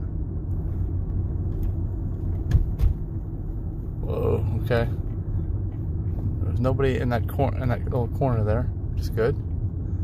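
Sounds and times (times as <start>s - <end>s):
road and tyre rumble in car: 0.0s - 10.0s
short thumps: 1.4s - 3.3s.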